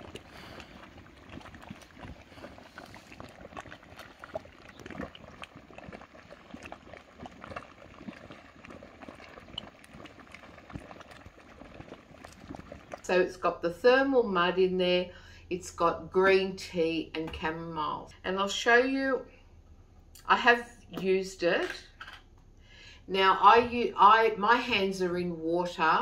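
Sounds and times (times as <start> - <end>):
mud pool bubbling and popping: 0.0 - 14.4.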